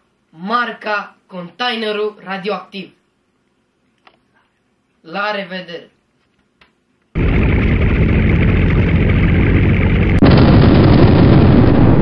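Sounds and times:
explosion-like rush of noise: 0:07.2 - 0:12.0.

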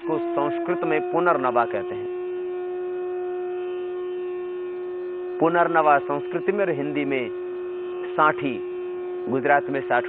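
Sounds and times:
steady droning tone: 0:00.0 - 0:10.0.

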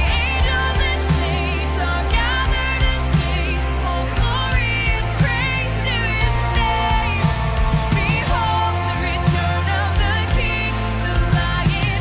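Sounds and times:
bass guitar: 0:00.0 - 0:12.0
drums: 0:00.0 - 0:12.0
electric guitar: 0:00.0 - 0:12.0
woman singing: 0:00.0 - 0:12.0.

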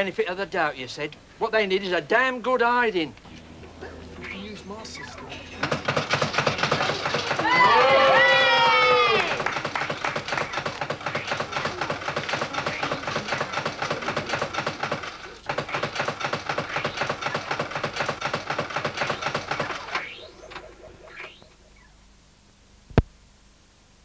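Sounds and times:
rising electronic bleeps: 0:03.2 - 0:13.2, 0:19.1 - 0:22.0
fruit machine clattering clicks: 0:05.1 - 0:21.4.

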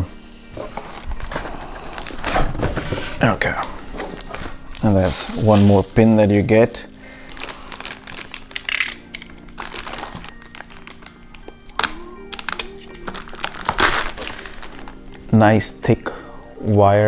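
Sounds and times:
faint background music: 0:00.0 - 0:17.0
plastic bag crinkling: 0:00.9 - 0:15.2.

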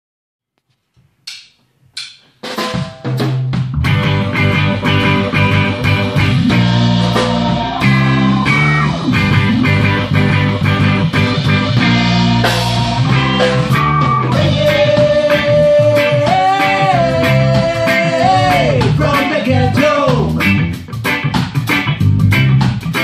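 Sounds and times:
drum kit: 0:01.3 - 0:23.0
electric guitar: 0:03.6 - 0:23.0
keyboard: 0:03.8 - 0:23.0.

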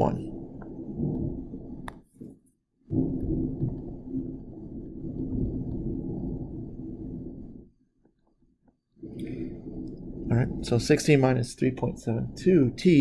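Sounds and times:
low rumbling background noise: 0:09.0 - 0:13.0.

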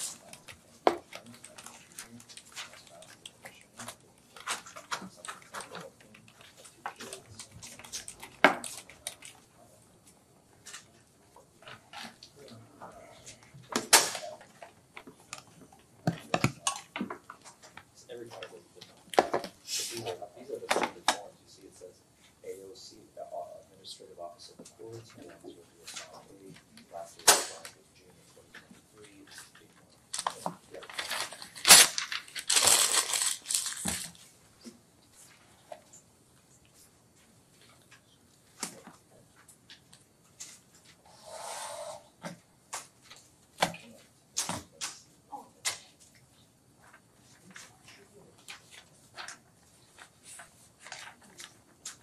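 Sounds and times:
papers rustling: 0:00.0 - 0:21.9, 0:24.2 - 0:36.0, 0:42.7 - 0:52.0
objects clicking and knocking: 0:13.6 - 0:19.6.

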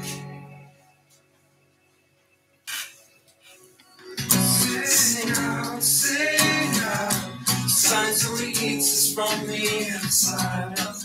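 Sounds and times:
acoustic guitar strumming: 0:00.0 - 0:00.9, 0:04.0 - 0:11.0.

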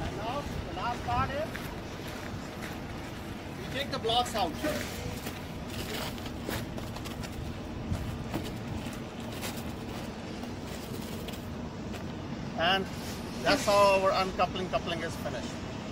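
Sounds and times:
steady background rumble: 0:00.0 - 0:15.9.

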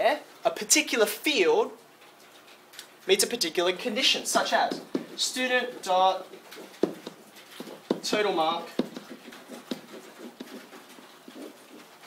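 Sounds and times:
pen scratching on whiteboard: 0:06.3 - 0:12.0.

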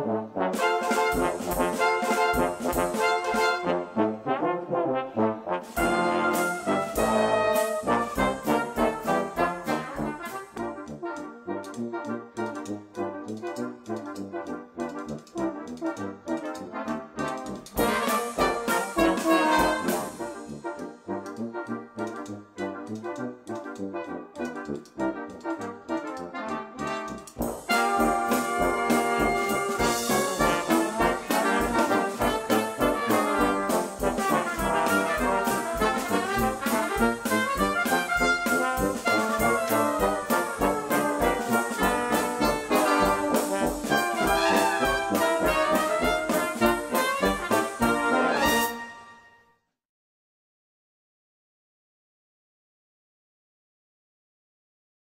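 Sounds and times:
brass ensemble playing jazz: 0:00.0 - 0:49.4
drum kit steady beat: 0:00.5 - 0:03.8, 0:05.8 - 0:10.6, 0:17.7 - 0:20.4, 0:27.3 - 0:48.6.

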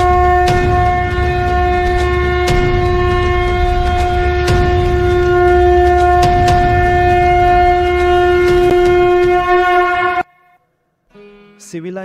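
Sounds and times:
low rumble: 0:00.0 - 0:10.2
sharp strikes: 0:00.0 - 0:10.2
conch shell blown: 0:00.0 - 0:10.6.

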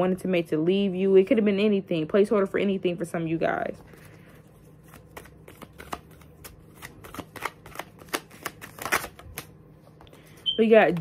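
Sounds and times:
cards being shuffled: 0:03.8 - 0:11.0.

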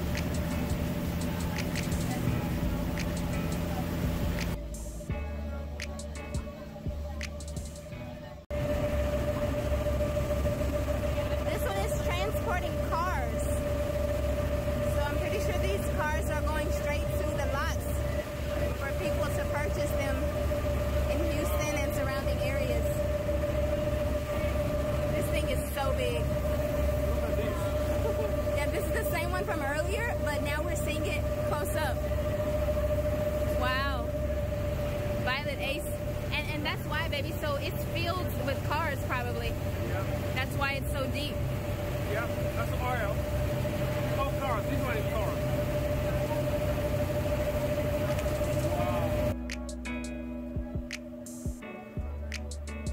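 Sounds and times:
indistinct voices: 0:00.0 - 0:49.9
water rumble: 0:00.0 - 0:51.0
boat engine humming: 0:00.0 - 0:52.9.

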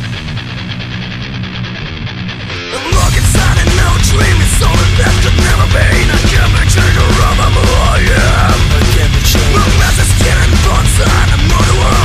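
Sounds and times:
electric guitar fast picked rhythm: 0:00.0 - 0:12.0.

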